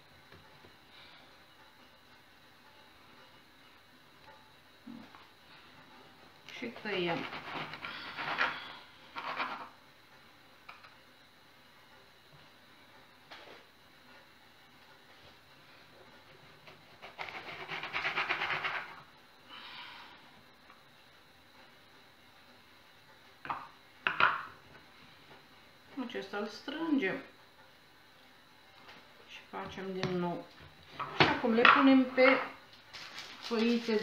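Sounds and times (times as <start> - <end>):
baking paper rustling and tearing: 32.8 - 34.0.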